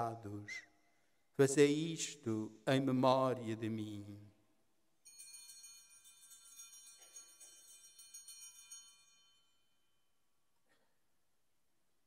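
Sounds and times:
small bells jingling: 5.0 - 10.3.

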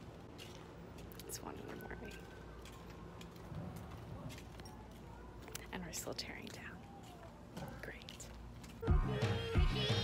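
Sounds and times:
woman whispering: 7.6 - 8.3
upbeat music with steady beat: 8.8 - 10.0.

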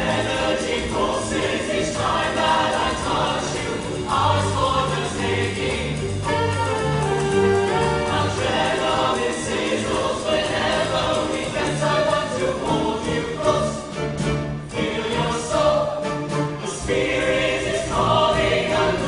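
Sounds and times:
choir singing in harmony: 0.0 - 19.0
instrumental accompaniment: 0.0 - 19.0.

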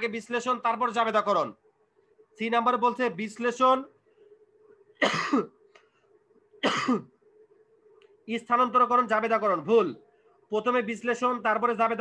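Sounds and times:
man coughing: 5.0 - 5.6, 6.6 - 7.2.

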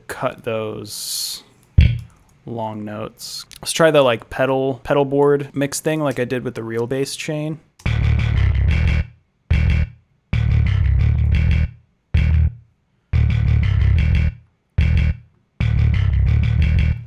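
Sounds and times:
distorted metal riff: 7.8 - 12.5, 13.2 - 17.0.

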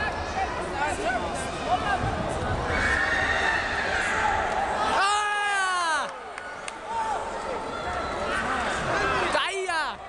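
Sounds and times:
shouting voices in a sports hall: 0.0 - 10.0.

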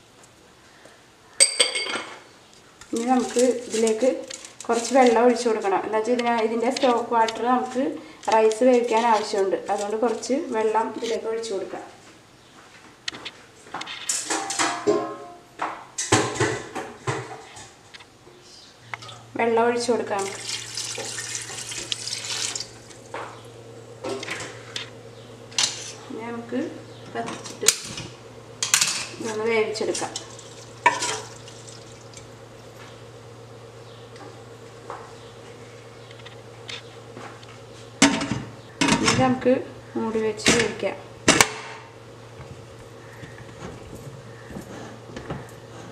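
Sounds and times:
steady low hum: 0.0 - 45.9
water poured into pot: 20.2 - 22.8.

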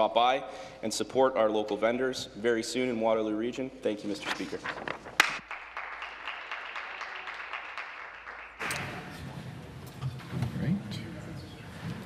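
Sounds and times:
scattered applause: 5.2 - 9.1.

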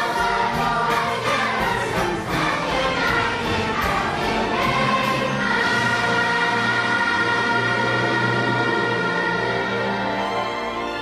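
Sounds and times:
children's choir singing: 0.0 - 11.0
orchestra playing: 0.0 - 11.0.

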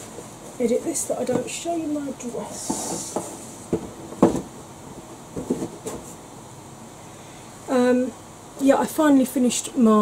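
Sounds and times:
electric fan running: 0.0 - 10.0
cardboard box knocks and taps: 3.2 - 4.5.

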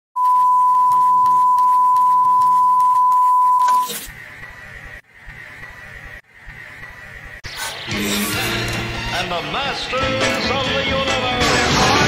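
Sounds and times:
steady electronic beep: 0.2 - 4.0.

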